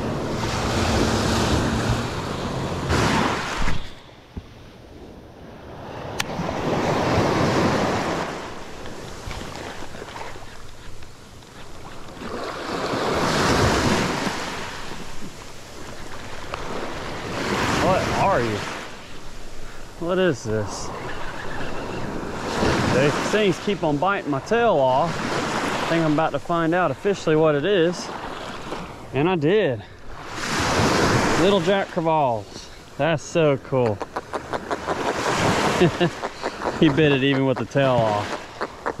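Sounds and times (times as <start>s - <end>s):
small waves breaking on sand: 0.0s - 4.0s, 5.6s - 33.9s, 34.8s - 38.7s.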